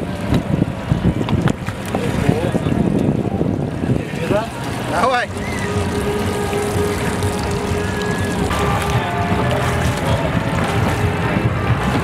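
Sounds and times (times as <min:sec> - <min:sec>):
water: 0:00.0 - 0:12.0
wind buffeting microphone: 0:00.0 - 0:12.0
boats knocking together: 0:00.1 - 0:12.0.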